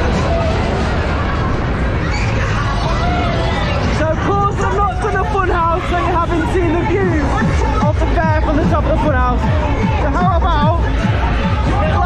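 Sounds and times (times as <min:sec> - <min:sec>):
steady low rumble: 0:03.3 - 0:12.0
fairground music: 0:05.3 - 0:12.0.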